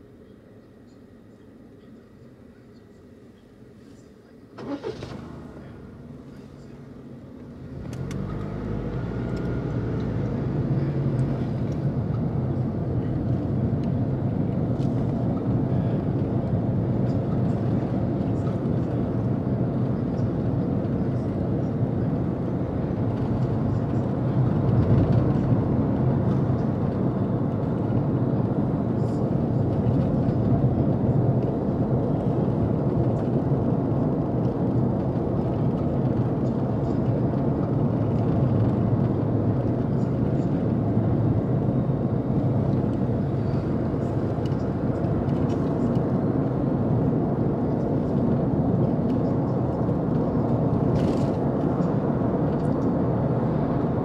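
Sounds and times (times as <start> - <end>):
road noise inside car: 0.0 - 54.0
car engine: 4.4 - 54.0.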